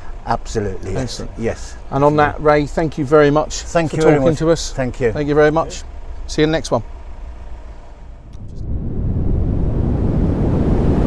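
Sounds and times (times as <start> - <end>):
wind on microphone: 8.3 - 11.0.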